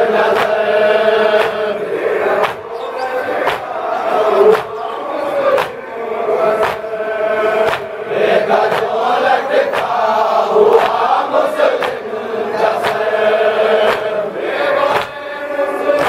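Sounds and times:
men chanting in unison: 0:00.0 - 0:16.0
chest-beating slaps: 0:00.3 - 0:00.7, 0:01.3 - 0:01.7, 0:02.4 - 0:03.8, 0:04.4 - 0:04.9, 0:05.5 - 0:05.8, 0:06.6 - 0:06.9, 0:07.6 - 0:09.0, 0:09.7 - 0:10.0, 0:10.7 - 0:11.1, 0:11.7 - 0:12.1, 0:12.7 - 0:13.1, 0:13.8 - 0:14.2, 0:14.9 - 0:15.2.

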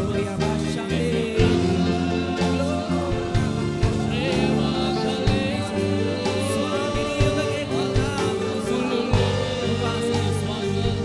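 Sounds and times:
keyboard accompaniment: 0:00.0 - 0:11.0
man singing a hymn: 0:00.0 - 0:11.0.

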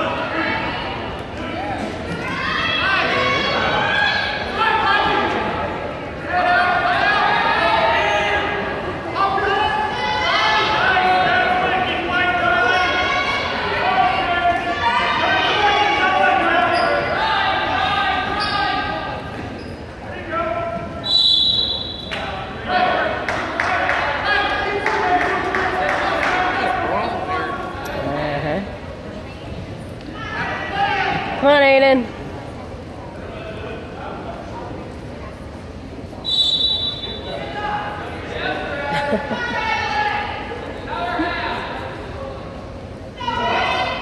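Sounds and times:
crowd shouting and cheering: 0:00.0 - 0:19.3, 0:30.0 - 0:32.1, 0:43.1 - 0:44.0.

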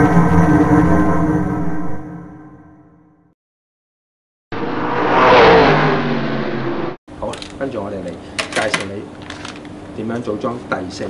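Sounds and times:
race car engine revving past: 0:04.5 - 0:07.0.

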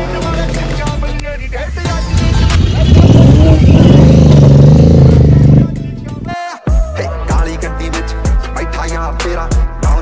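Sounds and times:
car engine revving hard: 0:01.8 - 0:06.2.

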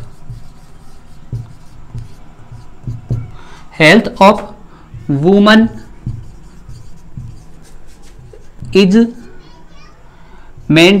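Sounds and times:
marker squeaking: 0:00.0 - 0:03.4, 0:05.0 - 0:09.0
marker writing on whiteboard: 0:00.0 - 0:09.3.

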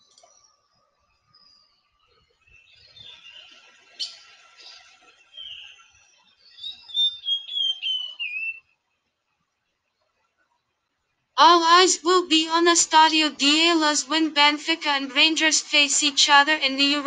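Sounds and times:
bird chirping: 0:01.3 - 0:08.6.

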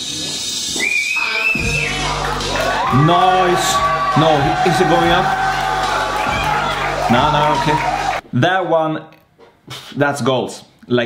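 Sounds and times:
high wavering whistle: 0:00.7 - 0:06.9
music with deep bass: 0:01.6 - 0:08.2.

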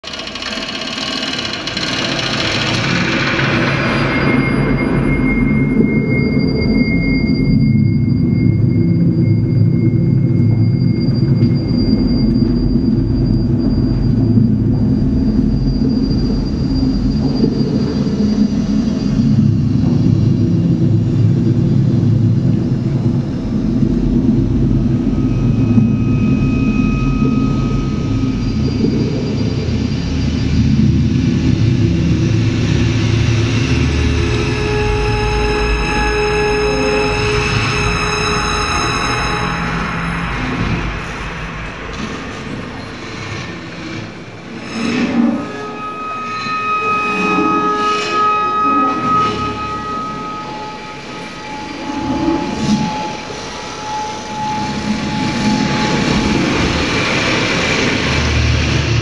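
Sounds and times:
low rumbling drone: 0:00.0 - 0:59.0
thin high held tones: 0:23.0 - 0:41.8, 0:42.4 - 0:59.0.

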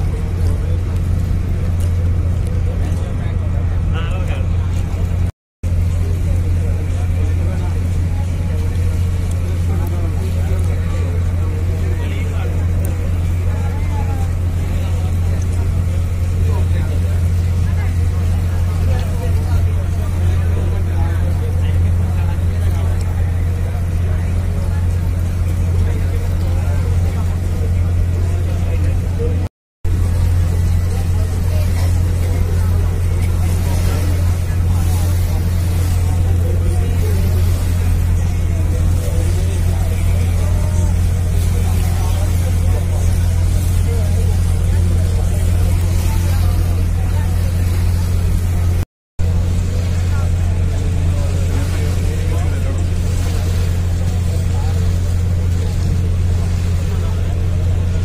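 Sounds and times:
diesel engine drone: 0:00.0 - 0:58.0
faint voices: 0:00.0 - 0:58.0.

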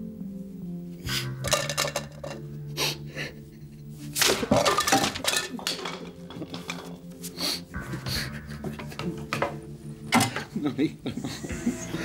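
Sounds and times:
objects crashing and clattering: 0:01.4 - 0:02.4, 0:04.2 - 0:07.0.

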